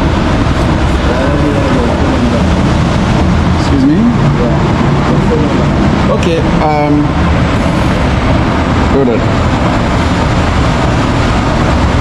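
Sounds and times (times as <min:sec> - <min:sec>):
low rumbling ambience: 0:00.0 - 0:12.0
faint voices: 0:00.9 - 0:02.7.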